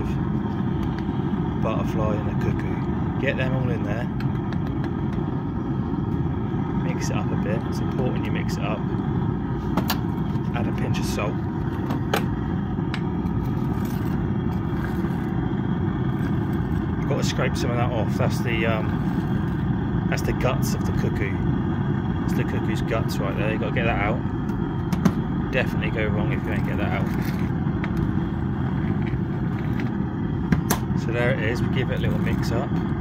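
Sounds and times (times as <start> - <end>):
furnace burner roaring: 0.0 - 33.0
steady low rumble: 0.0 - 33.0
skimmer scraping molten metal: 8.9 - 21.0.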